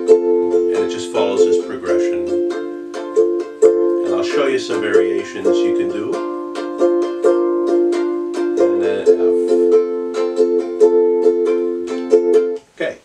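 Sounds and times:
ukulele strumming: 0:00.0 - 0:12.8.

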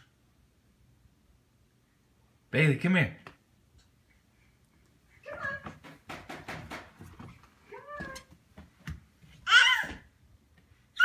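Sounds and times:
palms slapping hardwood floor: 0:05.3 - 0:10.0
baby squealing: 0:09.4 - 0:10.0.

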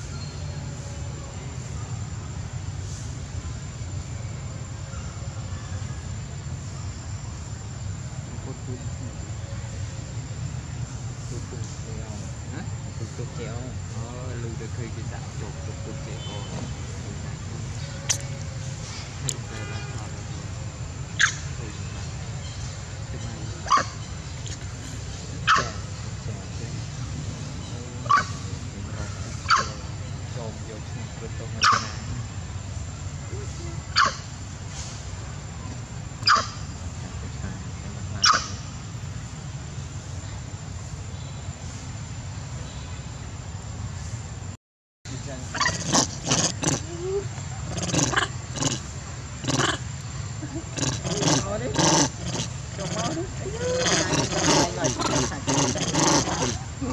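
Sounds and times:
monkey calls: 0:14.6 - 0:19.6, 0:21.1 - 0:32.4, 0:33.2 - 0:34.4, 0:36.2 - 0:37.1, 0:37.7 - 0:38.8, 0:45.2 - 0:56.9.

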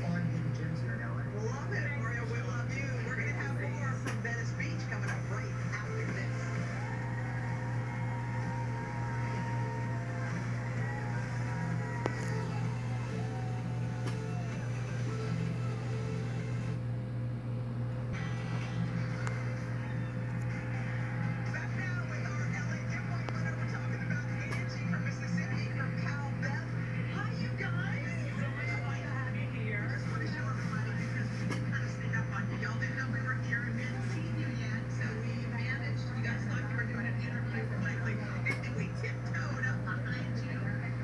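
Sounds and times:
steady low hum: 0:00.0 - 0:41.0
television music: 0:00.0 - 0:41.0.

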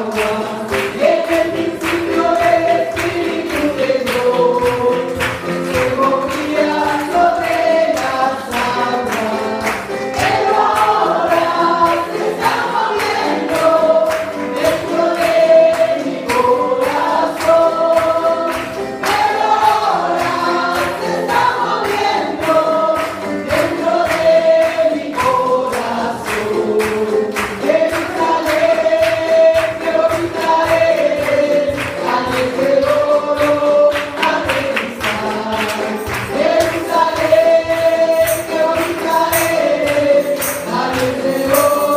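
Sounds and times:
congregation singing: 0:00.0 - 0:41.9
person singing into a microphone: 0:00.0 - 0:41.9.

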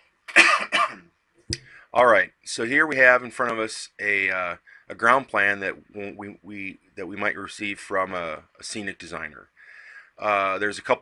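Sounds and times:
man coughing: 0:00.3 - 0:01.0.

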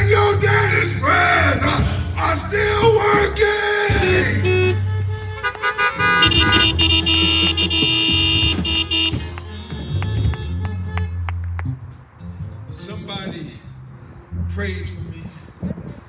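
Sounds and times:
steady bass line: 0:00.0 - 0:12.7
held keyboard chords: 0:03.9 - 0:11.0.

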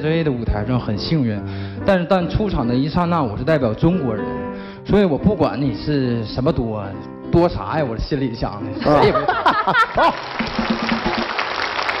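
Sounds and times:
audience laughter: 0:08.8 - 0:10.4
audience applauding: 0:09.6 - 0:12.0.

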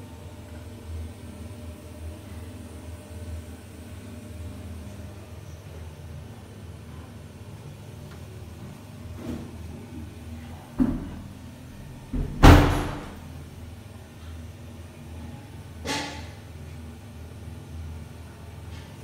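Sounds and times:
door banging: 0:12.2 - 0:13.2
door knocking shut: 0:12.2 - 0:13.2.

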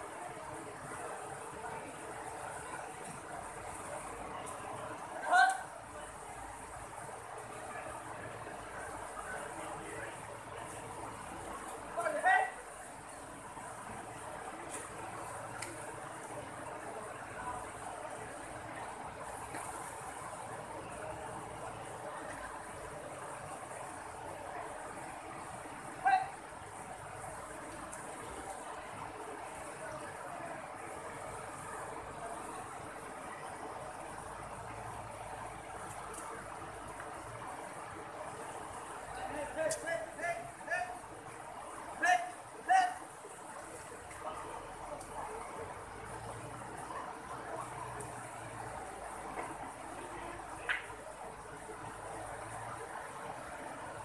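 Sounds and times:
people calling loudly: 0:42.0 - 0:43.1.

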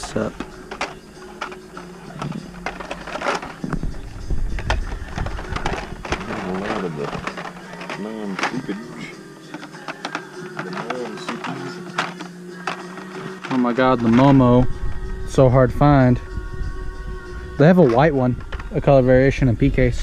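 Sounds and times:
plastic clicks and clatter: 0:00.0 - 0:08.8, 0:09.4 - 0:14.3.

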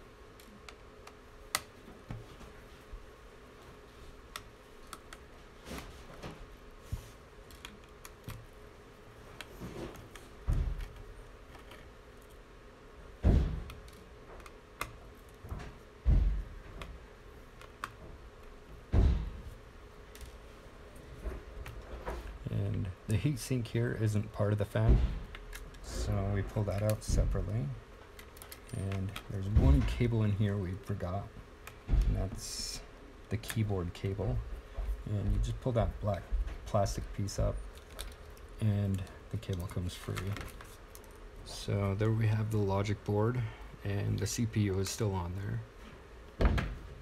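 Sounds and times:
dull thumps: 0:09.6 - 0:11.0, 0:13.2 - 0:14.4, 0:15.4 - 0:17.0, 0:18.8 - 0:19.6, 0:24.8 - 0:27.7, 0:31.8 - 0:32.7, 0:46.4 - 0:47.0.

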